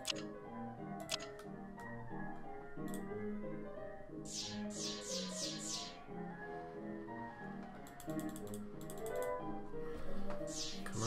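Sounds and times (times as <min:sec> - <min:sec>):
slot game music: 0:04.2 - 0:06.3, 0:10.4 - 0:11.0.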